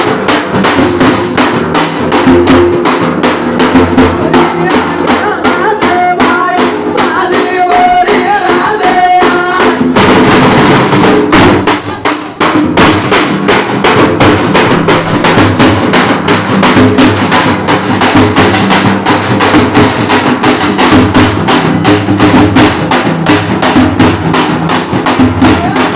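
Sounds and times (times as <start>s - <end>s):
frame drums struck with sticks: 0.0s - 25.9s
person singing: 4.3s - 10.0s.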